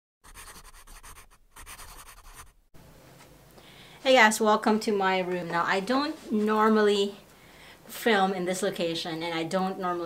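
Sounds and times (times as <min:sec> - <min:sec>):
pen scratching on paper: 0:00.2 - 0:02.6
faint room hiss: 0:02.8 - 0:10.0.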